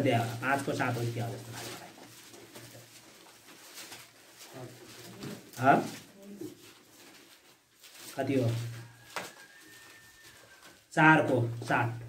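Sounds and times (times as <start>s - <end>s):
pages rustling: 0.0s - 10.9s.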